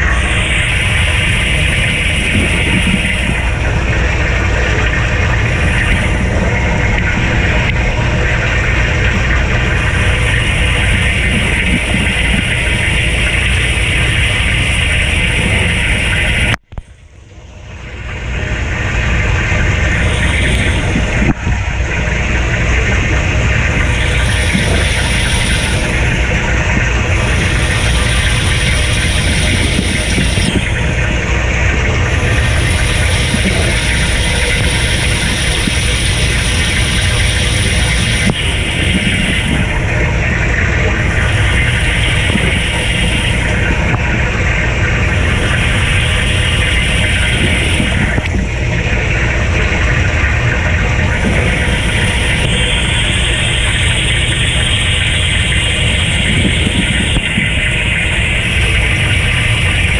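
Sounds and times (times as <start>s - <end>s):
dishwasher spraying water: 23.7s - 31.1s.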